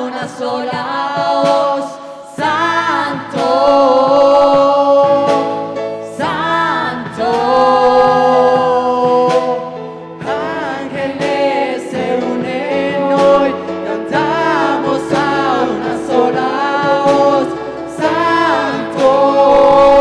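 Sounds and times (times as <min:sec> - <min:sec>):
worship band with singers: 0:00.0 - 0:20.0.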